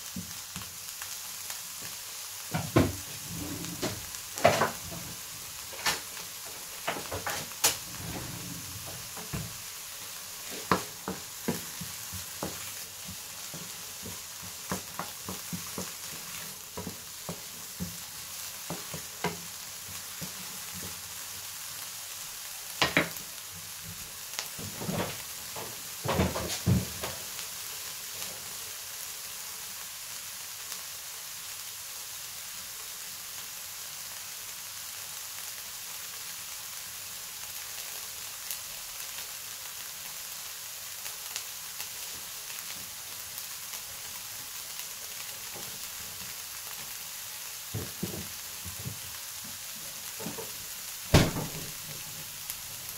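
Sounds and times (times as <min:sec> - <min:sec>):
onion sizzling in a frying pan: 0:00.0 - 0:52.9
wooden spoon scraping a pan: 0:02.6 - 0:06.0, 0:06.9 - 0:09.5.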